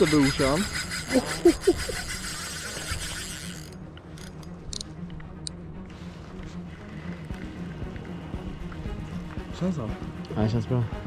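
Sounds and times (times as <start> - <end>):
spinning reel cranking: 0.0 - 4.8.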